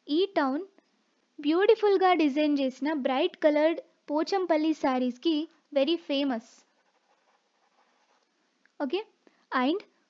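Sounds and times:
stylus scratching while writing: 6.6 - 8.3
woman speaking: 8.8 - 9.9.

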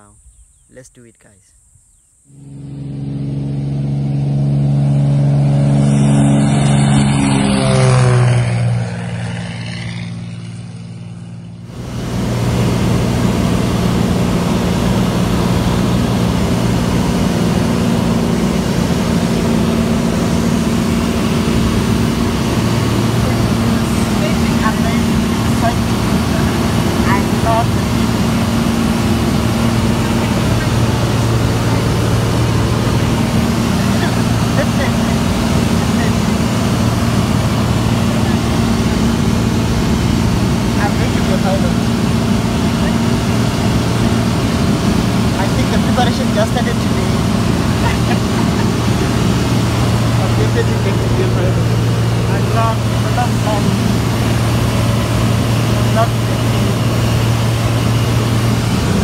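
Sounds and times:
plane cabin engine noise: 0.0 - 59.0
propeller plane taking off: 0.0 - 59.0.

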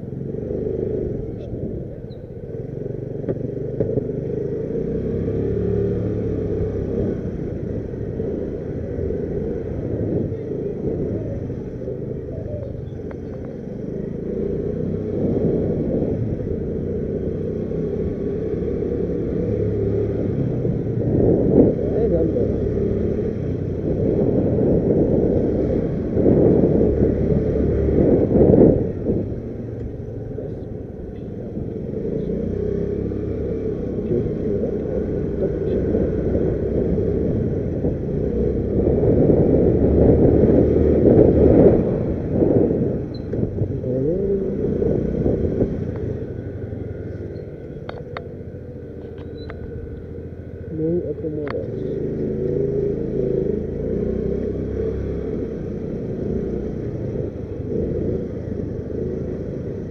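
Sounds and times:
motorcycle engine rumbling: 0.0 - 59.9
wind buffeting microphone: 6.0 - 18.2, 18.9 - 59.9.

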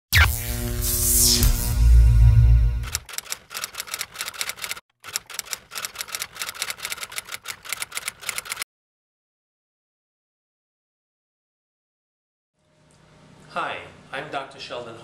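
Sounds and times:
typewriter key clicks: 2.9 - 8.6.

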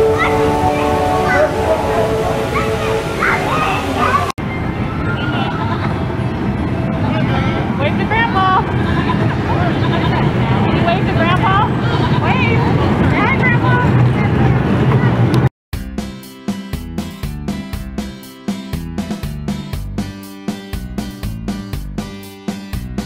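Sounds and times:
high children's voices: 0.0 - 6.0
crowd chatter: 0.0 - 15.5
kiddie ride low rumble: 0.0 - 15.5.

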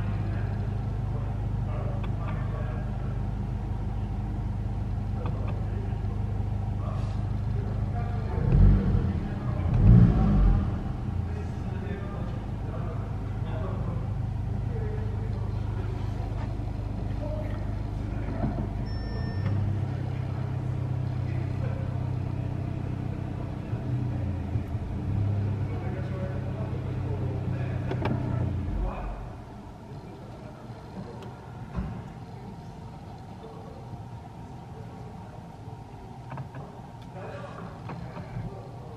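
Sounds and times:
car engine idling: 0.0 - 38.9.

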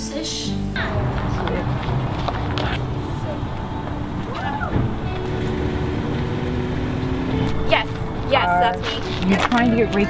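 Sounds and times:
background music with held notes: 0.0 - 10.0
low rumble: 0.7 - 9.9.

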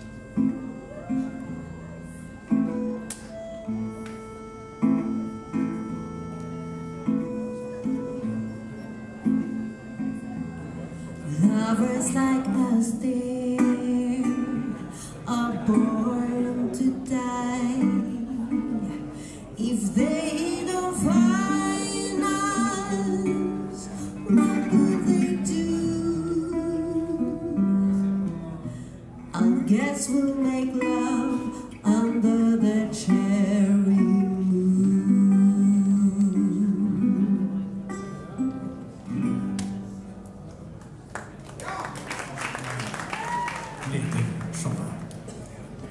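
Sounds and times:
resonator guitar playing: 0.0 - 40.8.

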